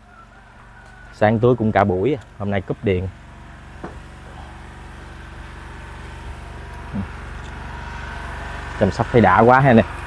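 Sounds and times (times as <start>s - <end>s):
small engine idling: 0.0s - 10.0s.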